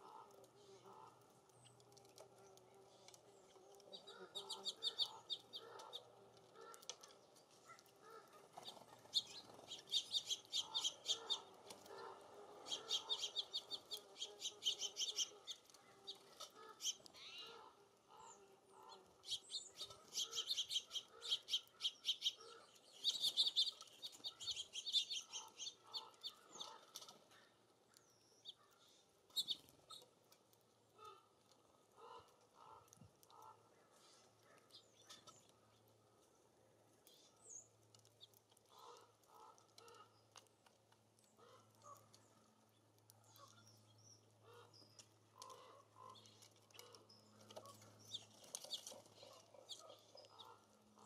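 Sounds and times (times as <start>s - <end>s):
songbirds chattering: 0.0s - 51.0s
soft low bird calls: 2.5s - 30.2s.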